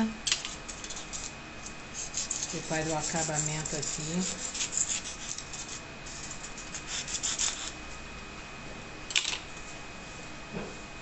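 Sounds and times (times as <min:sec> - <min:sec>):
scratchy rubbing and scraping: 0:00.7 - 0:07.8.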